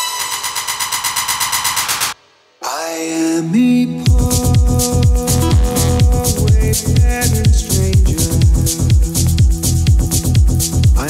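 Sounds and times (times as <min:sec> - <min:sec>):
electronic dance music: 0:05.3 - 0:06.6.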